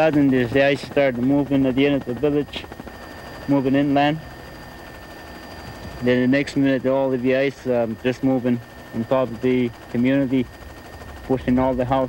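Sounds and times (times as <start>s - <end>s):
faint aircraft engine drone: 0.0s - 12.0s.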